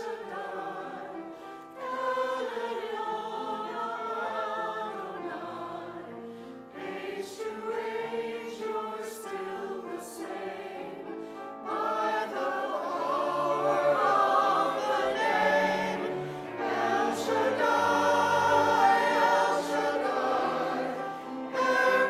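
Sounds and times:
church choir singing: 0:00.0 - 0:22.0.

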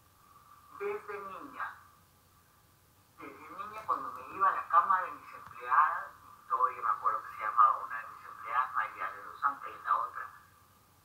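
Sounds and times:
woman talking: 0:00.7 - 0:01.9, 0:03.2 - 0:10.5.

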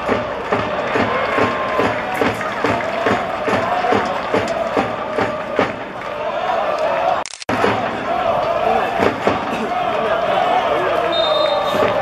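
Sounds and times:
football crowd chanting: 0:00.0 - 0:12.0.

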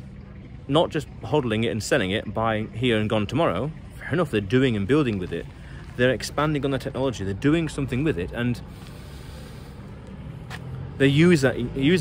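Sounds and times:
distant road traffic rumble: 0:00.0 - 0:12.0.

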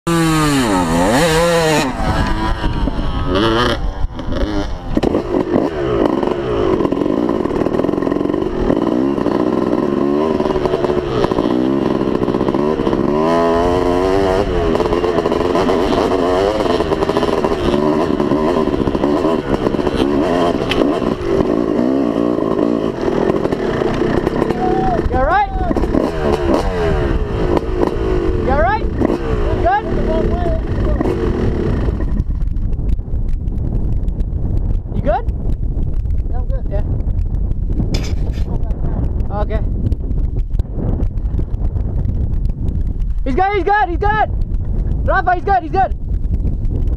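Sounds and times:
dirt bike engine revving: 0:00.1 - 0:32.4.

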